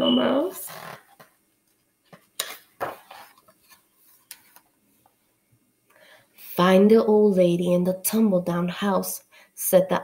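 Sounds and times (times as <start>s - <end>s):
book page turning: 0.7s - 4.7s
soft paper handling: 1.1s - 5.2s.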